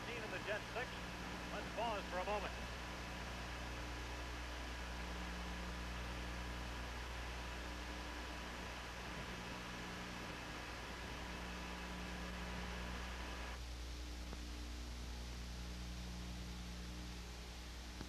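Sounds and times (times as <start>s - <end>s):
faint whining tones: 0.0s - 18.0s
low electrical hum: 0.0s - 18.0s
steady hiss: 0.0s - 18.0s.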